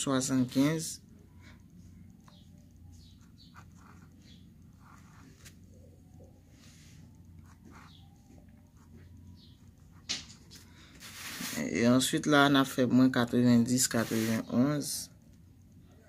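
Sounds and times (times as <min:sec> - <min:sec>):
steady low hum: 0:00.0 - 0:16.0
pen scratching on paper: 0:03.0 - 0:05.5, 0:07.4 - 0:08.1, 0:13.8 - 0:14.6.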